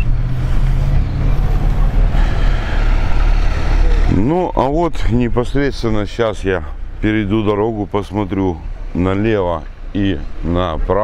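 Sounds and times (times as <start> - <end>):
vehicle passing: 0.0 - 11.0.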